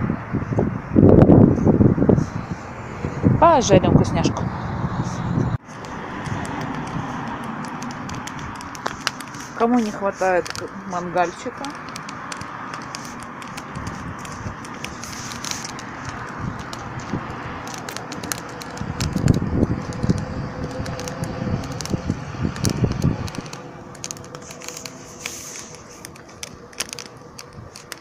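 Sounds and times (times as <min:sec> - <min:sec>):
wood fire crackling and popping: 0:05.6 - 0:28.0
low rumble: 0:15.7 - 0:27.6.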